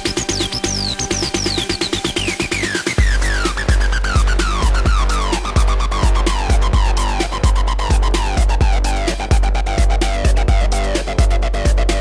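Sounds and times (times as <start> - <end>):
breakbeat drums: 0.0 - 12.0
busy hi-hats: 0.0 - 12.0
deep sub-bass: 0.0 - 12.0.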